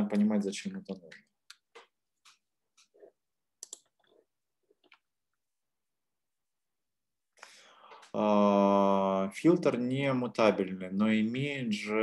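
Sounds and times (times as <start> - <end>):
computer clicks: 3.6 - 4.1.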